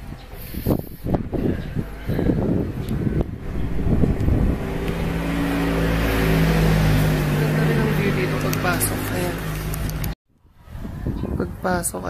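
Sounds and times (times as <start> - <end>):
wind buffeting microphone: 0.0 - 12.0
vehicle engine droning: 1.2 - 10.2.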